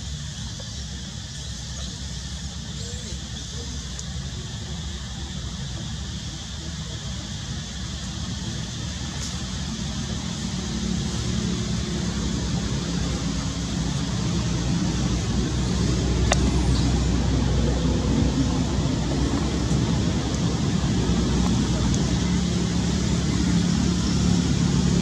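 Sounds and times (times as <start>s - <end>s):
traffic rumble: 0.0s - 25.0s.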